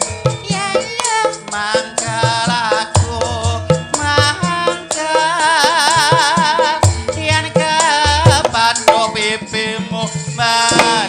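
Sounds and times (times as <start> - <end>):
woman singing: 0.0 - 9.8, 10.5 - 11.0
gamelan music: 0.0 - 11.0
hand drum strokes: 10.7 - 11.0.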